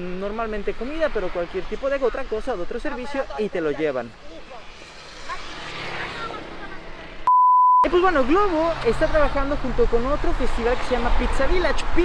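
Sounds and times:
censor bleep tone: 7.3s - 7.9s.

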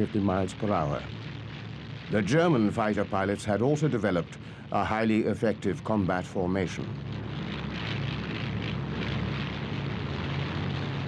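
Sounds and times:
piston aircraft engines droning: 0.0s - 11.0s.

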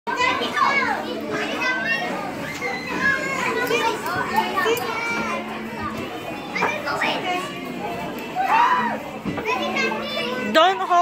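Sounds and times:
children shouting and squealing: 0.1s - 10.5s.

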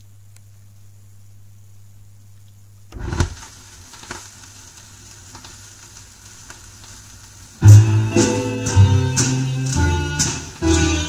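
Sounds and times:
vinyl surface crackle with clicks: 2.3s - 11.0s.

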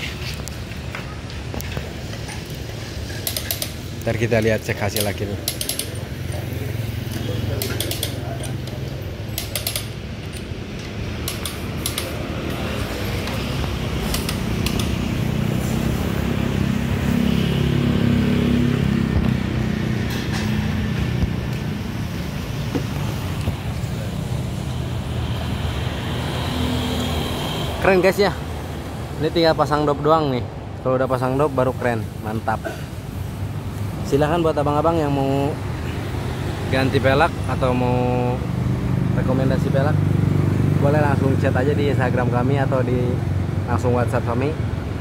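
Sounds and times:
vehicle engine rumbling: 0.0s - 45.0s
hand tools clicking on wheel nuts: 1.6s - 6.5s, 7.1s - 12.6s, 13.2s - 15.0s.

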